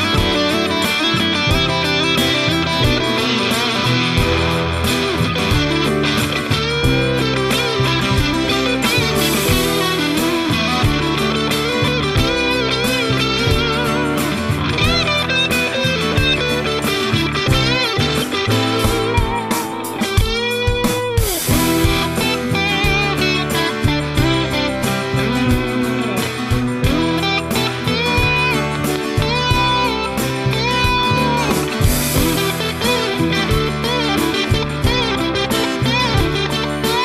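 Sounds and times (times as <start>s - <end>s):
bass: 0.0s - 37.0s
drums: 0.0s - 37.0s
lead electric guitar: 0.0s - 37.0s.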